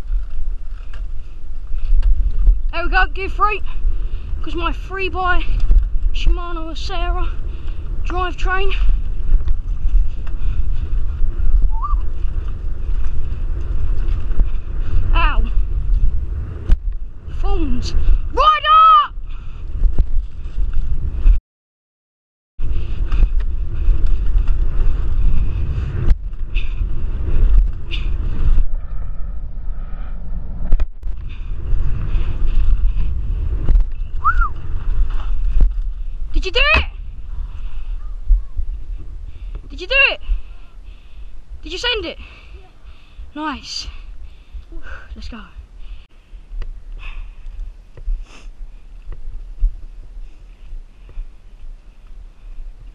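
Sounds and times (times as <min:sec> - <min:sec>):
bike tyres rumbling over dirt: 0:00.0 - 0:18.4, 0:19.2 - 0:21.4, 0:22.6 - 0:29.6, 0:30.5 - 0:41.6
wind rushing on microphone: 0:00.0 - 0:21.4, 0:22.6 - 0:52.9
person whooping: 0:34.2 - 0:34.6.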